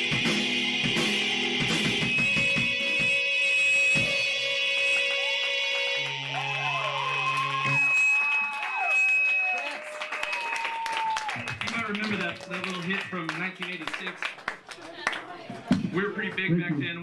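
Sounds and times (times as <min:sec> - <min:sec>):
electronic keyboard music: 0:00.0 - 0:09.7.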